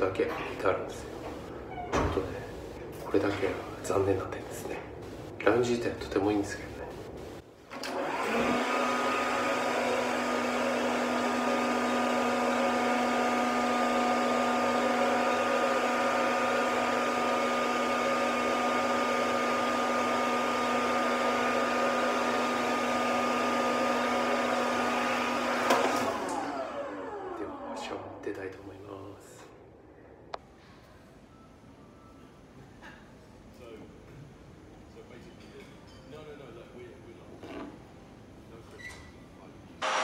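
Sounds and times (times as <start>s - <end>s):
hair dryer motor humming: 7.8s - 28.1s.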